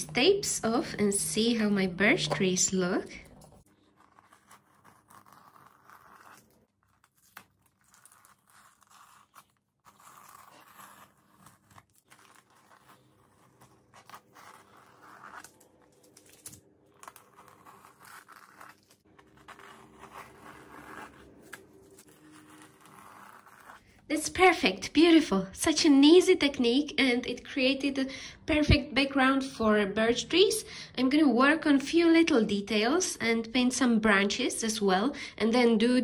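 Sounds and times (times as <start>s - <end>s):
masking tape peeling off: 3.8s - 23.8s.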